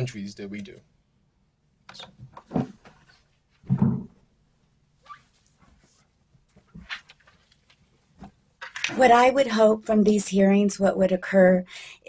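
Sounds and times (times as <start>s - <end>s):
faint shuffling and handling: 5.1s - 8.6s.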